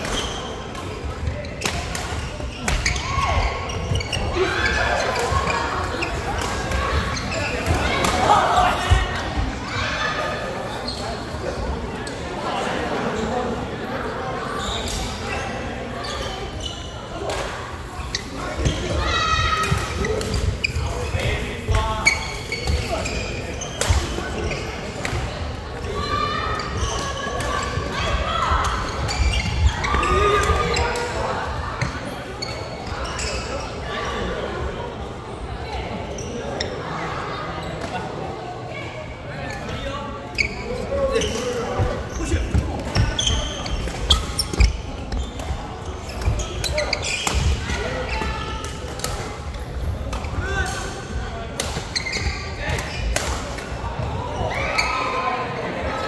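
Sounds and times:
voices in background: 0:00.0 - 0:56.0.

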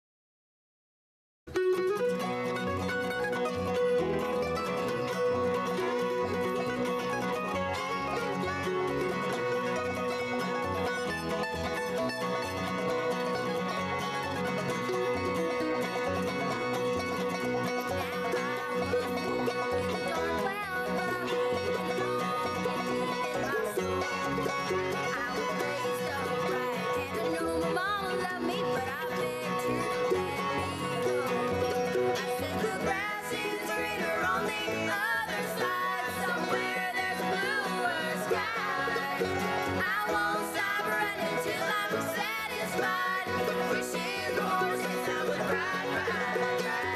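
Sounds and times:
acoustic guitar: 0:01.5 - 0:46.9
banjo: 0:01.5 - 0:46.9
fiddle: 0:01.5 - 0:46.9
mandolin: 0:01.5 - 0:46.9
upright bass: 0:01.5 - 0:46.9.

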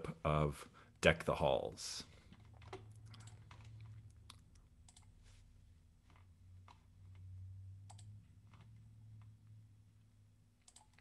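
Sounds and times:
low steady hum: 0:00.0 - 0:11.0
computer mouse and keyboard clicks: 0:02.3 - 0:05.2, 0:06.0 - 0:09.4, 0:10.6 - 0:11.0.

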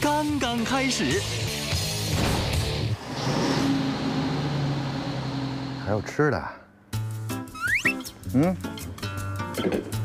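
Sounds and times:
background music: 0:00.0 - 0:03.0, 0:05.8 - 0:10.0
bus engine driving off: 0:02.3 - 0:06.2
road noise: 0:02.8 - 0:06.7.

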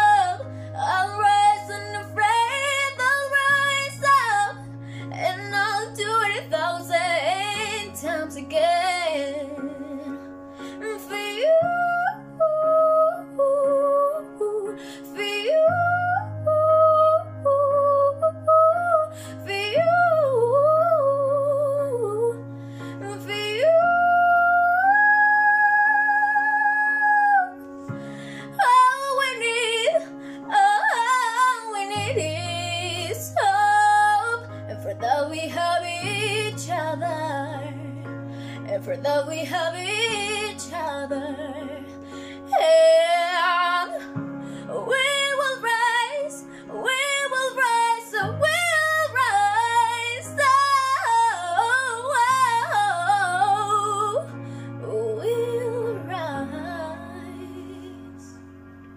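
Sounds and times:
girl singing: 0:00.0 - 0:10.1, 0:28.6 - 0:37.9, 0:38.7 - 0:58.3
sustained backing chords: 0:00.0 - 0:58.9.

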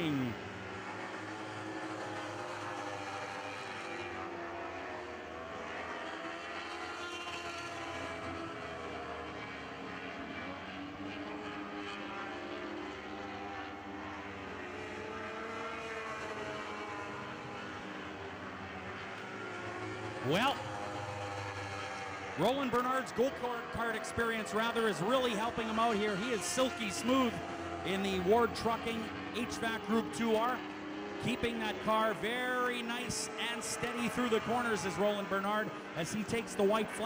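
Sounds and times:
racing car engines: 0:00.0 - 0:37.0.

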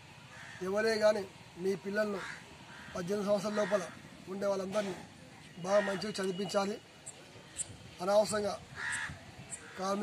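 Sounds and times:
crow cawing: 0:00.3 - 0:00.8, 0:02.1 - 0:04.1, 0:05.8 - 0:06.2, 0:08.7 - 0:10.0
man speaking: 0:03.0 - 0:06.9.

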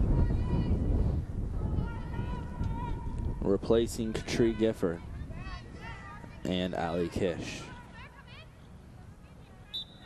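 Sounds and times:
wind buffeting microphone: 0:00.0 - 0:07.8.

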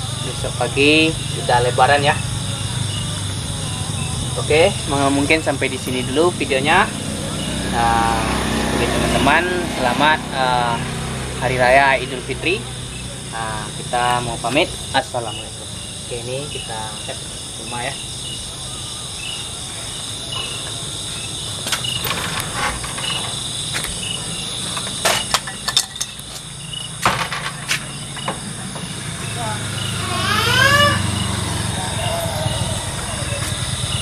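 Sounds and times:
crickets trilling: 0:00.0 - 0:34.0
short rising call: 0:29.9 - 0:34.0.

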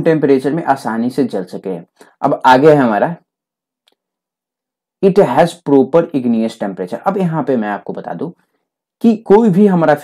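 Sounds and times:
man speaking: 0:00.0 - 0:03.4, 0:05.0 - 0:08.4, 0:09.0 - 0:10.0.

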